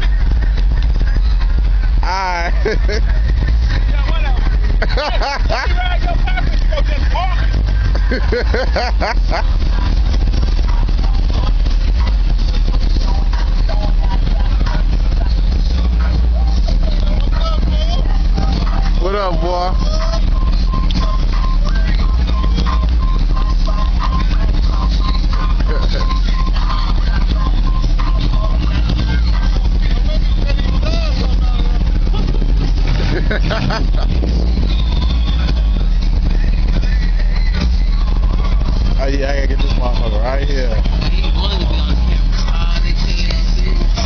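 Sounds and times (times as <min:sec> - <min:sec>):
cars cruising past: 0:00.0 - 0:44.0
indistinct voices: 0:00.0 - 0:44.0
music: 0:00.0 - 0:44.0.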